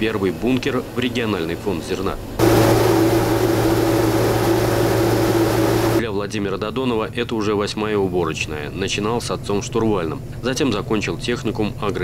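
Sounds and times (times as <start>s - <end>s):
combine harvester humming: 2.4s - 6.0s
grain hissing as it pours: 2.4s - 6.0s.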